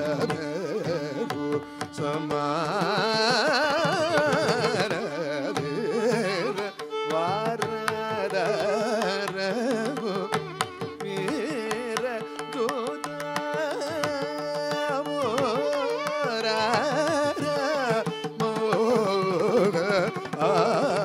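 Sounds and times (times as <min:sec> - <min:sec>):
man singing ornamented melody: 0:00.0 - 0:21.0
violin: 0:00.0 - 0:21.0.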